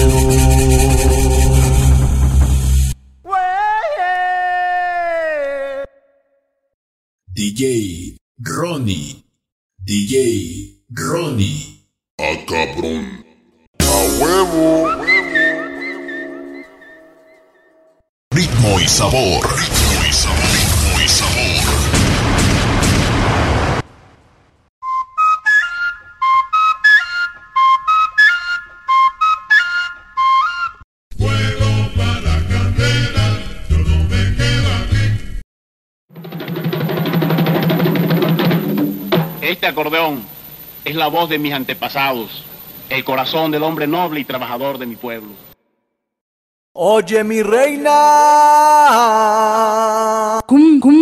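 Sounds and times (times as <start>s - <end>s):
held low bass note: 0.0s - 3.0s
echoing shouted voice: 3.2s - 6.4s, 12.8s - 16.6s
fast drum roll: 36.1s - 39.6s.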